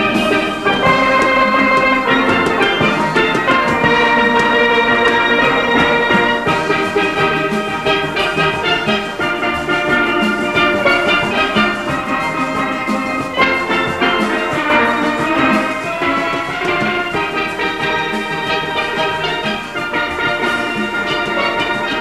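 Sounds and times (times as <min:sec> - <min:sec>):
drum rhythm: 0:00.0 - 0:22.0
steel pans playing melody: 0:00.0 - 0:22.0.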